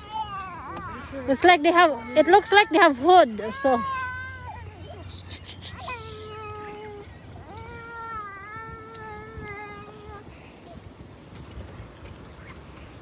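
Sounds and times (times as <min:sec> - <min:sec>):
child whining: 0:01.7 - 0:10.7.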